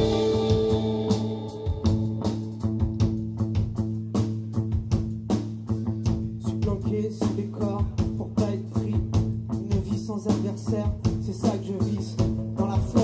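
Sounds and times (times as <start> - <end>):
electric guitar: 0.0 - 3.3
drum beat: 0.0 - 5.6
bass guitar: 0.0 - 13.0.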